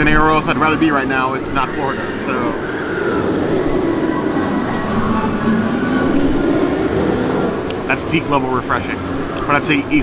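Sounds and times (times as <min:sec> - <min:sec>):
faint wavering tones: 0:00.0 - 0:10.0
low outdoor rumble: 0:02.5 - 0:10.0.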